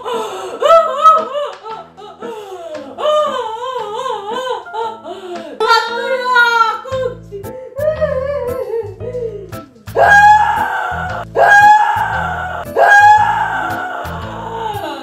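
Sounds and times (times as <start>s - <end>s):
woman wailing fake crying: 0.0s - 15.0s
background music with steady beat: 6.9s - 15.0s.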